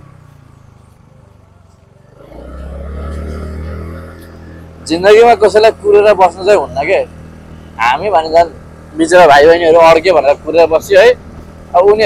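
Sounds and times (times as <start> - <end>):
scooter engine humming: 0.0 - 12.0.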